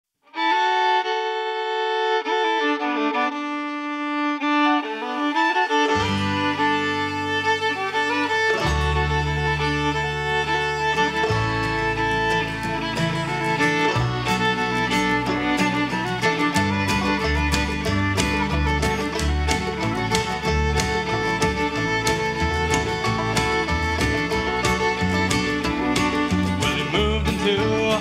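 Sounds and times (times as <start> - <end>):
fiddle melody: 0.2 - 28.0
low bass notes: 5.9 - 28.0.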